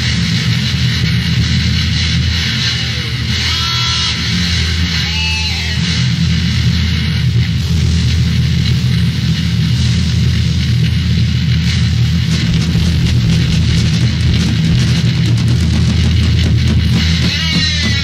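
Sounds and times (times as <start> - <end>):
heavy metal band playing: 11.4 - 18.0.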